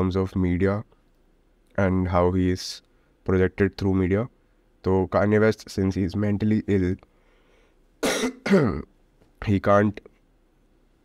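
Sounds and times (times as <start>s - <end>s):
man coughing: 8.0s - 8.9s.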